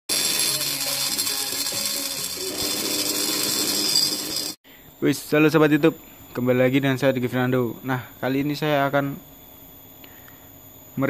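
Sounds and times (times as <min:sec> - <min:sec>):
music with simple tune: 0:00.1 - 0:04.5
grinder high-pitched whine: 0:00.1 - 0:04.6.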